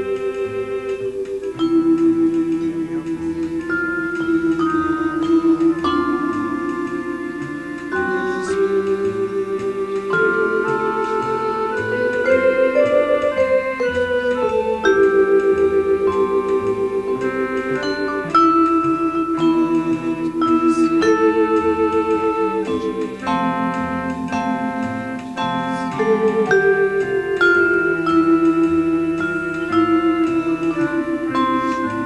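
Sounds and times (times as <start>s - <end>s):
vibraphone notes: 0.0s - 32.0s.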